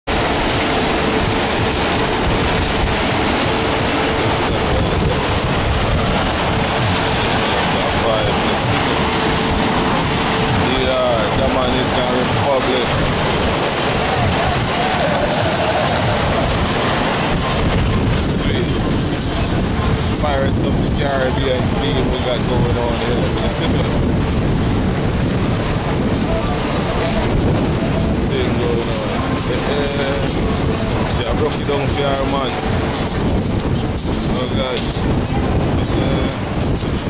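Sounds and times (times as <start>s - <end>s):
churning water: 0.0s - 37.0s
music: 0.1s - 37.0s
voices: 0.1s - 37.0s
wind rushing: 0.1s - 37.0s.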